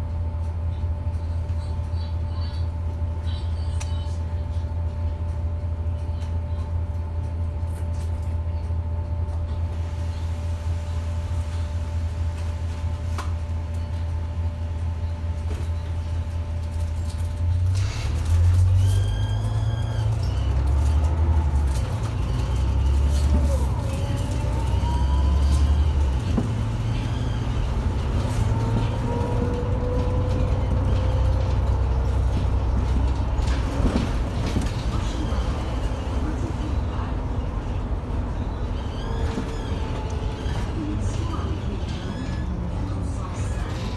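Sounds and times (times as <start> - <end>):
bus accelerating: 0.0 - 43.9
bus engine idling: 0.0 - 43.9.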